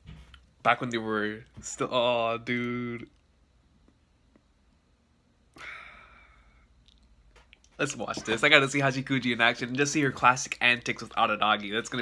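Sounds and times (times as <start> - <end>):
man sighing: 5.5 - 6.6.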